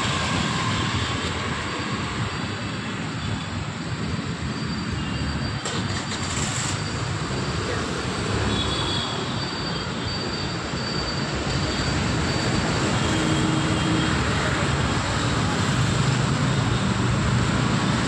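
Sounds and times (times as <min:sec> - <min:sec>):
city traffic rumble: 0:00.0 - 0:18.0.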